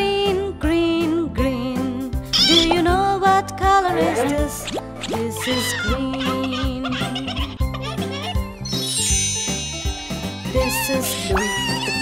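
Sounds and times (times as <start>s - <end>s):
cartoon rooster squawking: 2.4s - 2.9s, 3.9s - 7.1s
sparkling magic chime: 8.6s - 11.2s.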